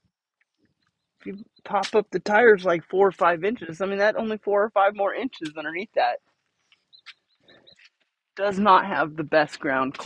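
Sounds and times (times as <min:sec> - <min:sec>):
faint high chirps: 0:06.6 - 0:08.0.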